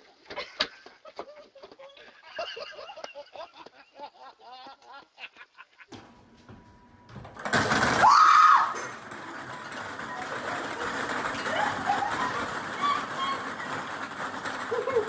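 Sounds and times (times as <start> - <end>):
scattered laughter: 0.2 - 5.9, 11.4 - 13.7, 14.4 - 15.0
steady background noise: 5.9 - 15.0
plastic balls clattering onto counter: 7.1 - 15.0
woman shrieking: 8.0 - 8.8.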